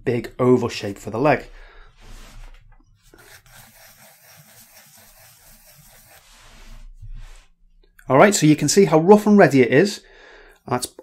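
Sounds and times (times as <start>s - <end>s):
pencil scratching on paper: 3.0s - 7.5s.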